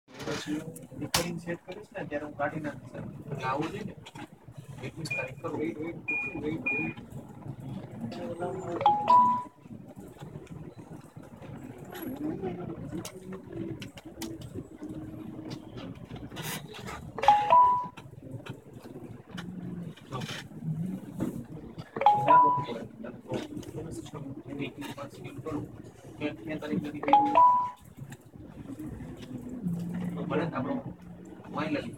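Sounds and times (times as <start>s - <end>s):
two-note notification chime: 22.0s - 22.8s.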